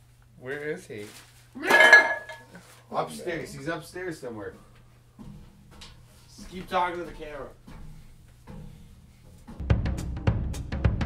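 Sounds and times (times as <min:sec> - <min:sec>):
hard objects clattering: 0:01.6 - 0:02.7.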